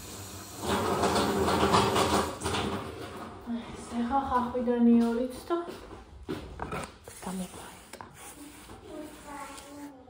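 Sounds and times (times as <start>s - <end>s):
tap water running into sink: 0.0s - 2.7s.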